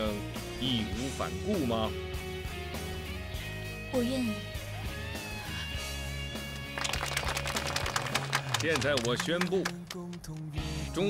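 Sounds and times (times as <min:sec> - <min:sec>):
soft background music: 0:00.0 - 0:04.6
crowd applauding: 0:06.4 - 0:10.5.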